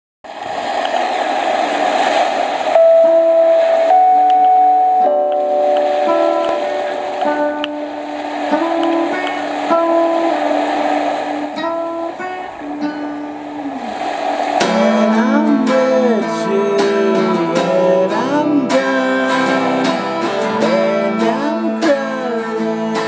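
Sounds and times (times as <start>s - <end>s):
guitar through effects: 2.4s - 23.0s.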